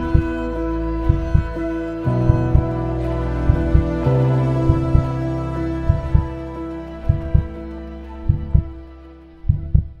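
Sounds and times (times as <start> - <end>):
heartbeat thumps: 0.0 - 0.4, 1.0 - 1.6, 2.2 - 2.8, 3.4 - 4.0, 4.6 - 5.2, 5.8 - 6.4, 7.0 - 7.6, 8.3 - 8.8, 9.5 - 10.0
held music note: 0.0 - 8.8.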